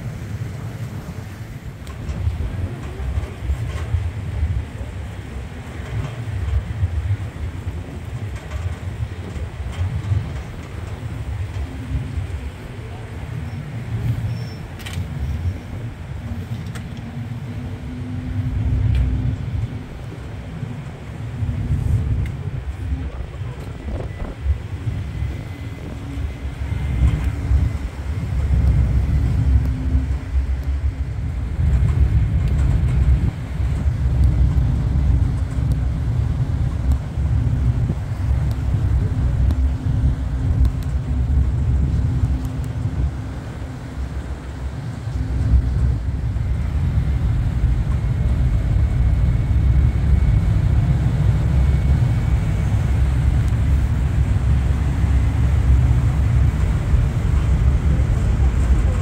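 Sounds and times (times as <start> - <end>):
ferry engines rumbling: 0.0 - 59.0.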